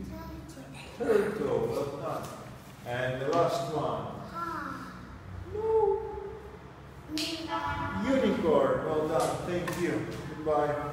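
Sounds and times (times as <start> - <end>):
child hooting ooh: 5.4 - 6.4.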